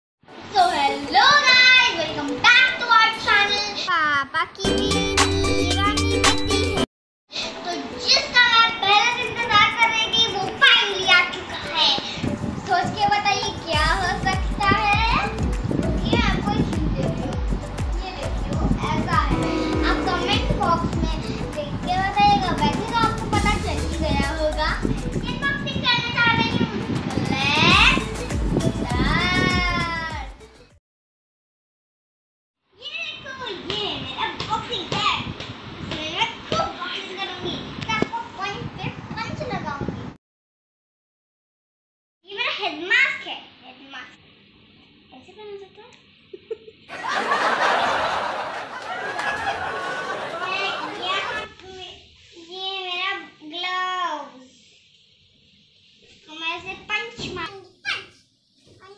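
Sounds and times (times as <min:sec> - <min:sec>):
girl speaking: 0:00.5 - 0:05.0, 0:07.4 - 0:15.4, 0:16.0 - 0:17.3, 0:18.0 - 0:28.0, 0:28.8 - 0:30.4, 0:32.8 - 0:35.3, 0:35.9 - 0:39.9, 0:42.3 - 0:44.1, 0:45.1 - 0:45.9, 0:50.4 - 0:54.6, 0:56.3 - 0:58.2.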